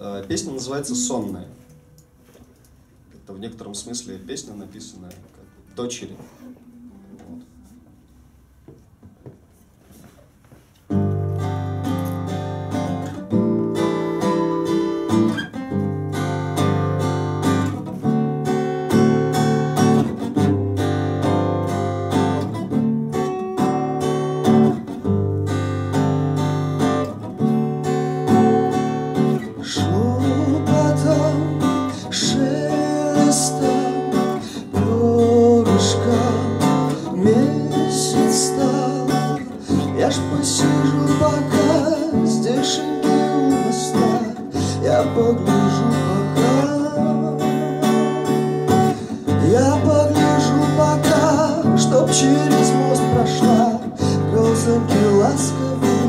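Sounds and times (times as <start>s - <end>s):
acoustic guitar plucked and strummed: 10.8s - 56.0s.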